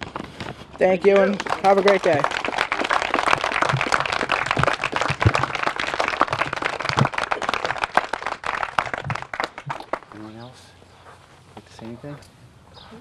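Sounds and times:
small group applauding: 1.0 - 10.5.

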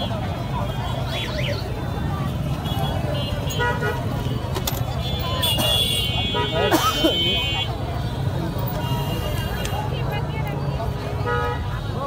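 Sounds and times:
people's voices: 0.0 - 12.0
traffic rumble: 0.0 - 12.0
vehicle horns tooting: 2.4 - 8.0, 8.7 - 9.8.

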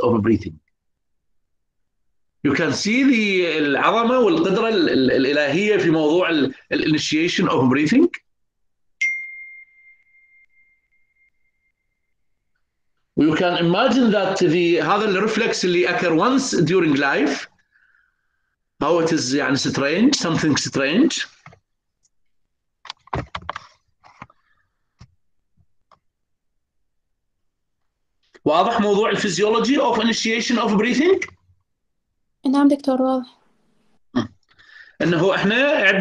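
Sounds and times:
high chime note: 9.0 - 12.0.

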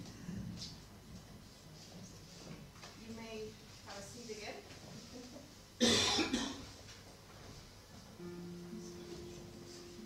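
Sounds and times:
person coughing: 5.8 - 6.6.

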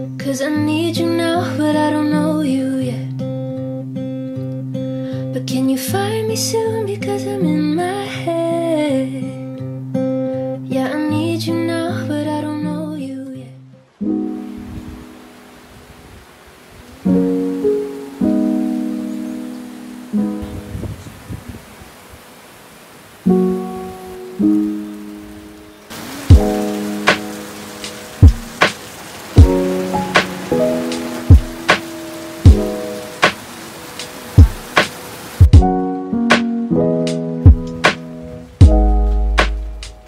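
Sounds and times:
rain hiss: 13.9 - 35.6, 37.1 - 40.0
soft piano notes: 16.8 - 21.2
sharp regular beat: 28.2 - 28.8, 31.3 - 31.6, 37.5 - 37.9.

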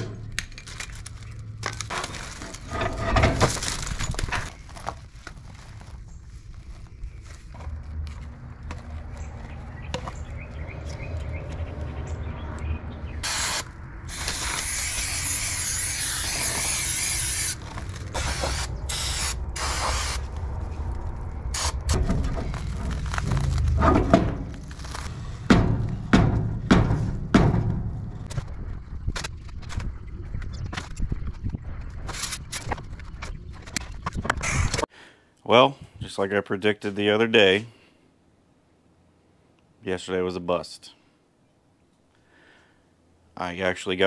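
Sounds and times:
aerosol spray can hissing: 13.2 - 17.6.

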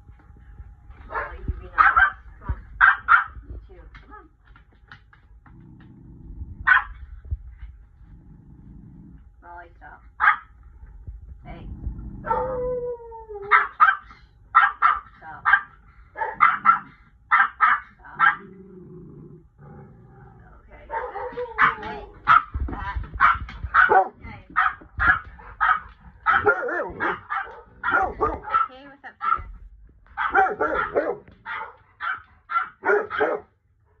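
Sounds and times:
dog barking: 1.1 - 3.4, 6.6 - 7.0, 10.2 - 10.5, 13.5 - 18.5, 20.9 - 22.5, 23.2 - 29.5, 30.2 - 33.6.

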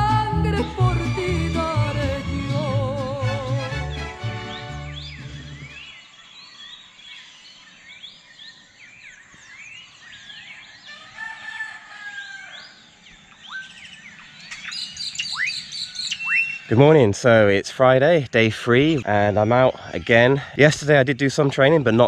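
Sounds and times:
song with accompaniment: 0.0 - 5.8
birds chirping and calling: 3.8 - 22.0
sharp falling bird whistles: 14.5 - 16.7.

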